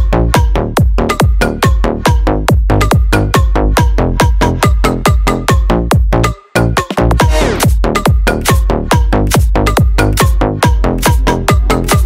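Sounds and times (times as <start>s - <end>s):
electronic dance music: 0.0s - 12.0s.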